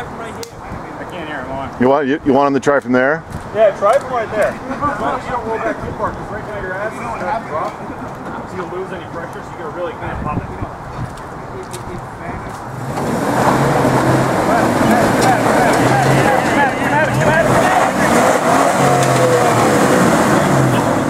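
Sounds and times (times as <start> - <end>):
tires working over rock: 10.4 - 21.0
engine revving hard under load: 12.7 - 21.0.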